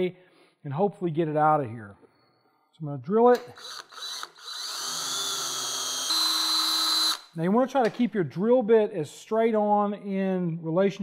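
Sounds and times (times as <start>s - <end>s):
cordless drill whining: 3.4s - 7.4s.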